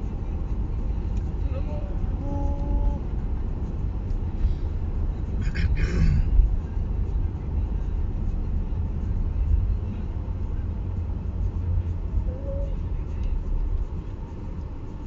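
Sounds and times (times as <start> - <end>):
car engine and road noise: 0.0 - 15.0.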